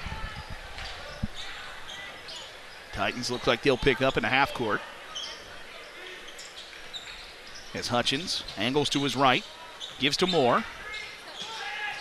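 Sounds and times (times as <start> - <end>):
gym crowd noise: 0.0 - 12.0.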